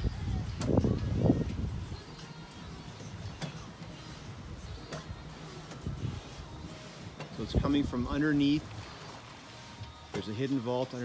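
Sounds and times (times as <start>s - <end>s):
pool cover motor humming: 0.0s - 11.0s.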